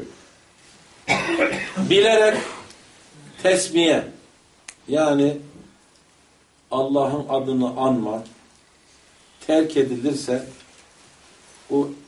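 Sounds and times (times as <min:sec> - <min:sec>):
man coughing: 0:01.1 - 0:02.7
man speaking: 0:01.7 - 0:02.7, 0:03.3 - 0:04.2, 0:06.7 - 0:08.4, 0:09.4 - 0:10.6, 0:11.7 - 0:12.0.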